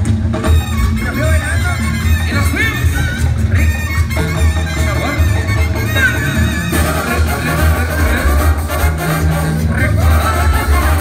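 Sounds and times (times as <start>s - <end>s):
heavy low bass line: 0.0s - 11.0s
trumpets and brass section: 0.0s - 11.0s.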